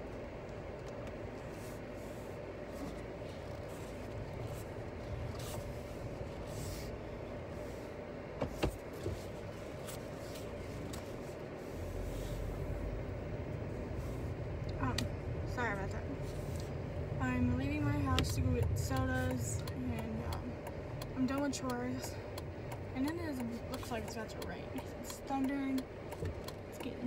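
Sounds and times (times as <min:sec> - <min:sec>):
car road and engine rumble: 0:00.0 - 0:27.0.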